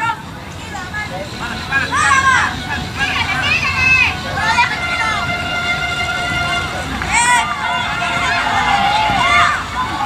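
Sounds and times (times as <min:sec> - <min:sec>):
outdoor background noise: 0:00.0 - 0:10.0
players shouting: 0:00.0 - 0:10.0.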